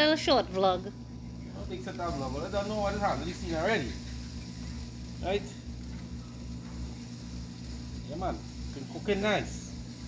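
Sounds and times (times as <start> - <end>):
meat sizzling on grill: 0.0 - 10.0
steady low hum: 0.0 - 10.0.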